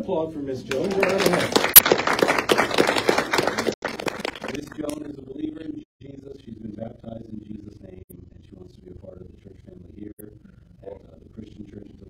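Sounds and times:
congregation applauding: 0:00.7 - 0:05.0.

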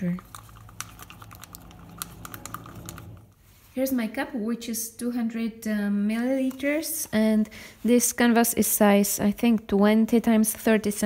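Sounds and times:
stick stirring paint in plastic cup: 0:00.0 - 0:03.4.

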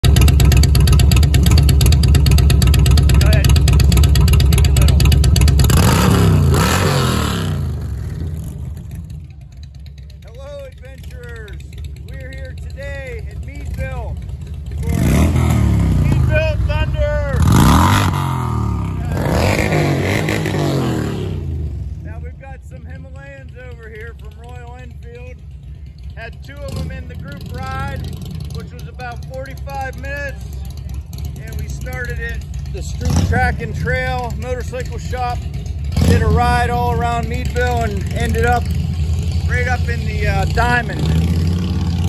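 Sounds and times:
motorcycle engine revving: 0:00.0 - 0:42.0.

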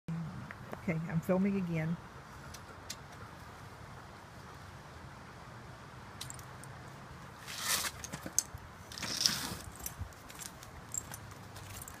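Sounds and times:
buckles clicking and jingling: 0:06.2 - 0:06.8, 0:07.6 - 0:12.0.

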